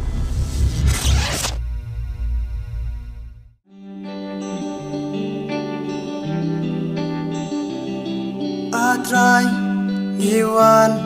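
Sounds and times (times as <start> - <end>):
deep rumble: 0.0 - 3.6
whoosh: 0.0 - 3.6
held musical chord: 3.7 - 10.2.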